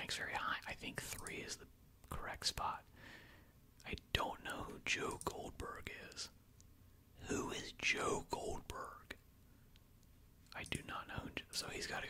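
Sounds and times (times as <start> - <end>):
man whispering: 0.0 - 3.0, 3.8 - 6.4, 7.2 - 9.2, 10.5 - 12.0.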